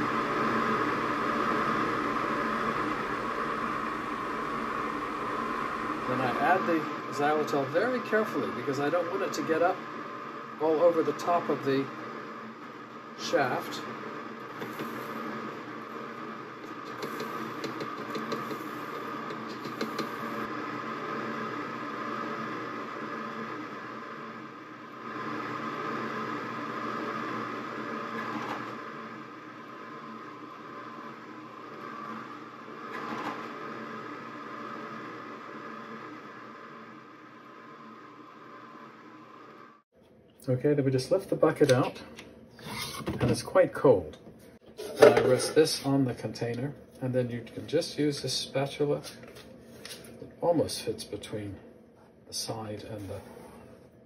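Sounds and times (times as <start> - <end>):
ice cream maker motor humming: 0.0 - 39.8.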